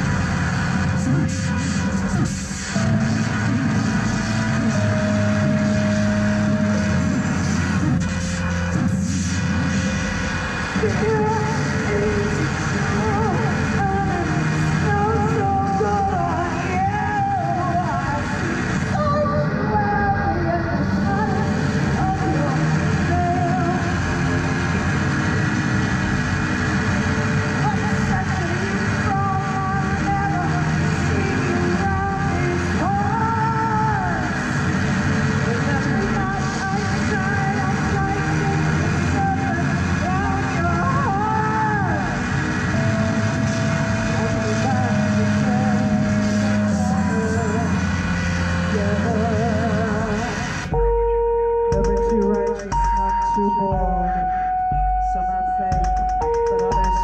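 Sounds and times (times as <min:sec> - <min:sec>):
electronic noise music: 0:00.0 - 0:57.0
held tones over low pulses: 0:00.0 - 0:57.0
voice through effects: 0:35.4 - 0:57.0.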